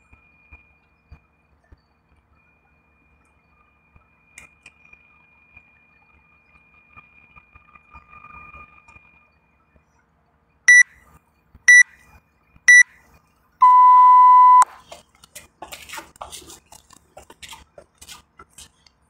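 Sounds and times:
long low beep: 0:10.7 - 0:10.9, 0:11.7 - 0:11.9, 0:13.6 - 0:14.6
timer beeps: 0:10.7 - 0:10.9, 0:11.7 - 0:11.9, 0:12.7 - 0:12.9, 0:13.6 - 0:14.6
scuffling and clatter: 0:14.7 - 0:19.0.

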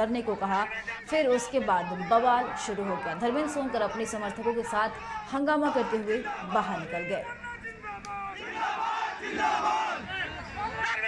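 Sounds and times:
angry crowd of men shouting: 0:00.0 - 0:11.0.

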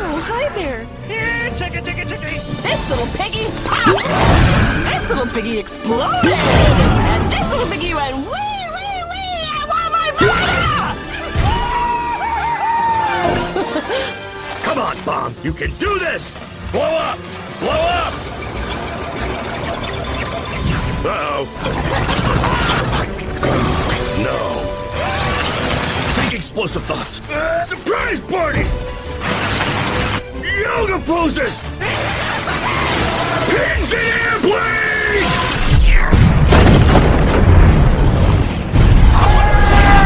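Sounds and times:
film score music: 0:00.0 - 0:40.0
rumbling battle effects: 0:17.3 - 0:27.1, 0:31.7 - 0:40.0
huge explosion rumbling: 0:35.6 - 0:40.0.

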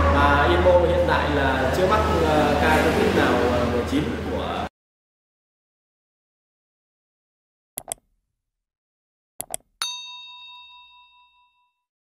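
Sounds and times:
quick clicks: 0:07.8 - 0:08.0
notification bell ding: 0:09.8 - 0:11.9.

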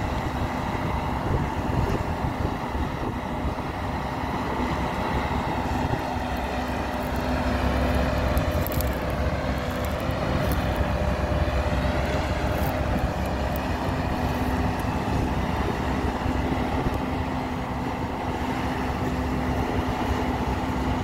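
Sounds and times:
excavator diesel engine running: 0:00.0 - 0:21.0.

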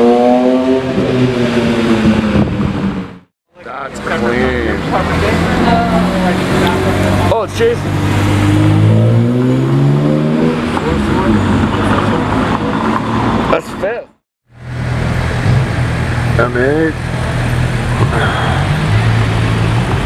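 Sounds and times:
car engine accelerating: 0:00.0 - 0:13.6, 0:14.5 - 0:20.0
street noise: 0:00.0 - 0:20.0
passing voices: 0:03.5 - 0:08.4, 0:16.4 - 0:19.7.

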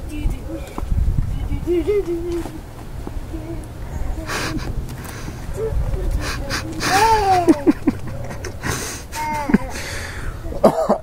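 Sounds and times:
wind rumbling on microphone: 0:00.0 - 0:10.6
young child crying out: 0:06.7 - 0:07.7, 0:09.1 - 0:09.9.

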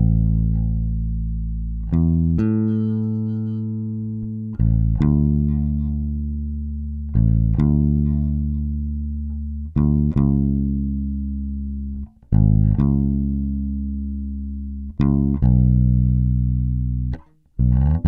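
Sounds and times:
electric bass guitar notes: 0:00.0 - 0:18.0.

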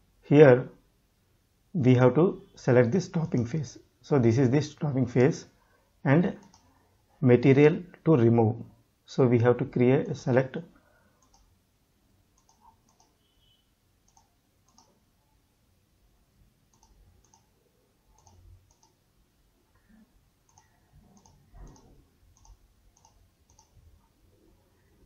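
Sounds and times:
computer mouse clicks: 0:06.4 - 0:06.8, 0:11.2 - 0:11.5, 0:12.4 - 0:13.2, 0:14.0 - 0:15.0, 0:16.7 - 0:17.5, 0:18.1 - 0:19.0, 0:19.8 - 0:23.8.

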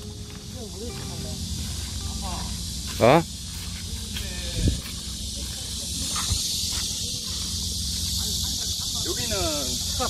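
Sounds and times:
cicadas singing: 0:00.0 - 0:10.0
faint distant voices: 0:00.0 - 0:10.0.

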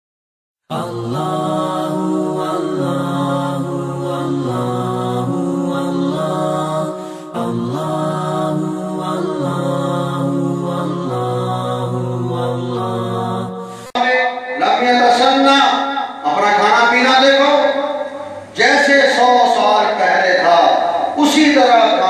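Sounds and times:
layered voices chanting: 0:00.7 - 0:22.0.

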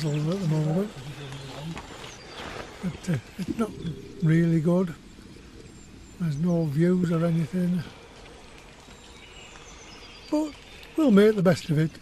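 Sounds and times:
distant bird calls: 0:00.0 - 0:12.0
faint outdoor background noise: 0:00.0 - 0:12.0.

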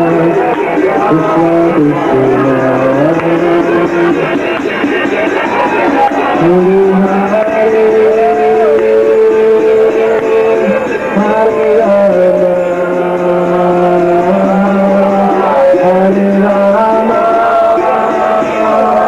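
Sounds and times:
loud live stage music: 0:00.0 - 0:19.0.

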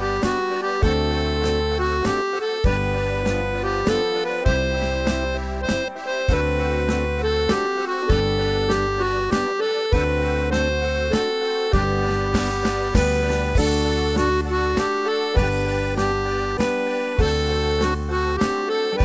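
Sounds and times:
backing track with bass and beat: 0:00.0 - 0:19.0
melodica melody: 0:00.0 - 0:19.0.

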